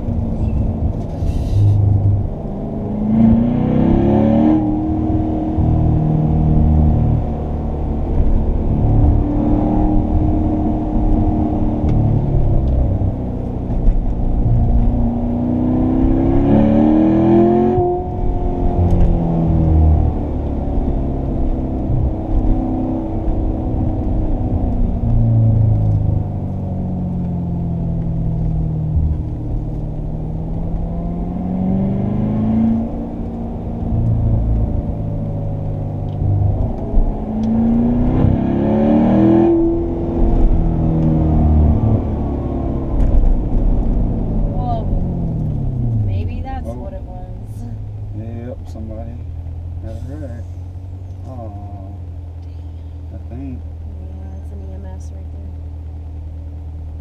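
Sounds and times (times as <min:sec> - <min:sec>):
car engine revving: 0:00.0 - 0:57.0.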